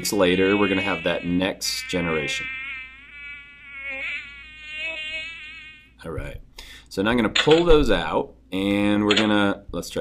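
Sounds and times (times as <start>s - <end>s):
fly buzzing: 0.0s - 6.0s.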